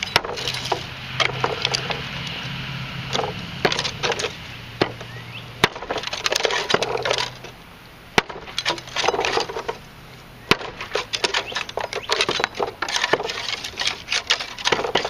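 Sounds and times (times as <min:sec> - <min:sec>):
dry branches crackling and rattling: 0:00.0 - 0:15.0
sharp cracks of dry wood: 0:00.0 - 0:15.0.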